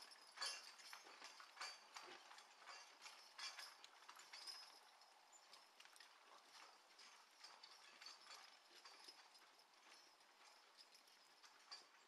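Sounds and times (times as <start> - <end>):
hooves and harness clinking: 0.0 - 12.0.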